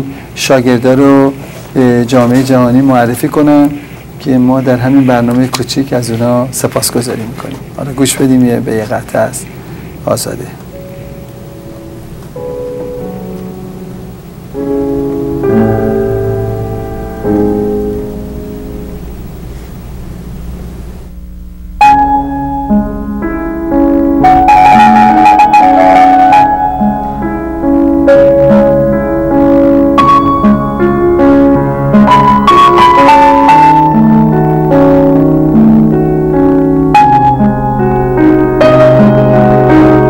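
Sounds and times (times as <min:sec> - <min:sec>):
piano chords: 0:10.2 - 0:40.0.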